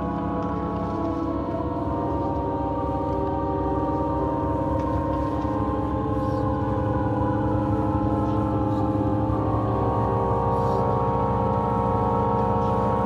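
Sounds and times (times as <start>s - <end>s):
drone music with sustained tones: 0.0s - 13.0s.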